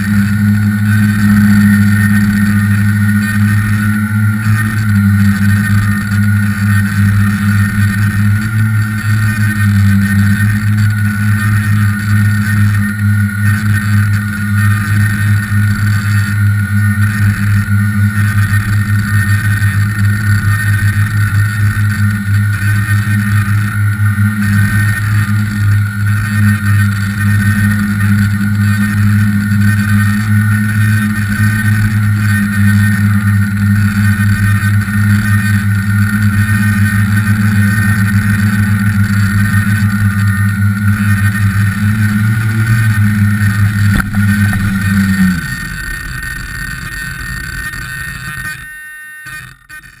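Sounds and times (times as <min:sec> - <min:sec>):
drone motors and propellers: 0:00.0 - 0:50.0
higher whine: 0:00.0 - 0:50.0.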